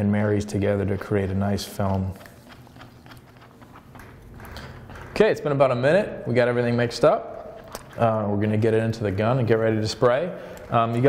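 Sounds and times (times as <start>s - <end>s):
stick stirring paint in plastic cup: 0.4s - 5.6s, 7.3s - 9.6s.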